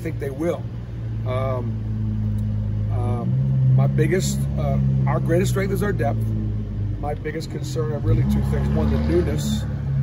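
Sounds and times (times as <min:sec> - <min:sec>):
low motor hum: 0:00.0 - 0:10.0.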